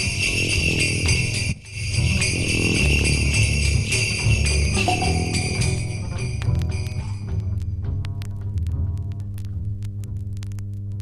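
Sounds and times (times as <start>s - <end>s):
static clicks and crackles: 6.2s - 11.0s.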